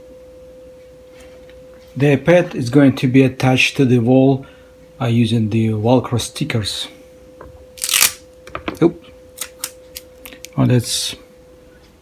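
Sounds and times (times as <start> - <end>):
faint steady hum: 0.0 - 12.0
velcro ripping: 7.8 - 8.2.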